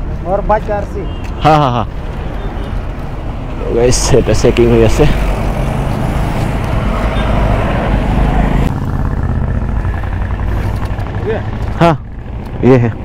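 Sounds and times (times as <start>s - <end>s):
motor vehicle passing on road: 0.0s - 13.0s.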